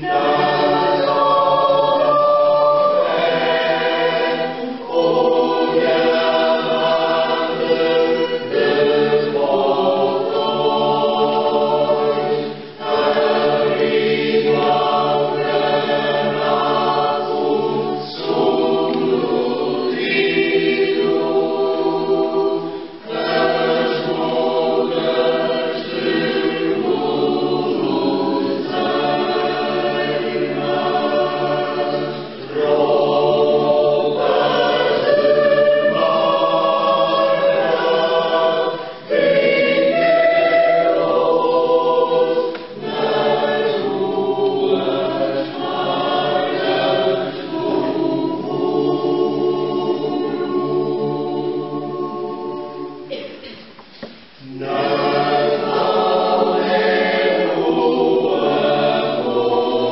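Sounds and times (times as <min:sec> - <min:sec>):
choir singing: 0:00.0 - 0:53.6, 0:54.2 - 0:59.9.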